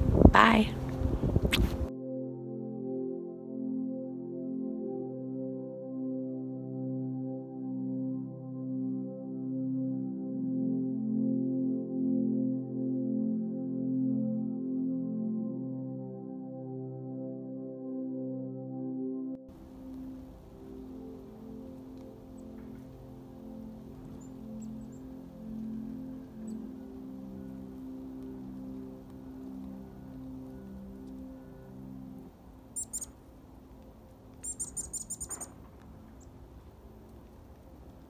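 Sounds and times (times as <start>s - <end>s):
soft ambient music: 0.0s - 38.0s
chickadees chirping: 32.8s - 33.2s, 34.3s - 36.4s.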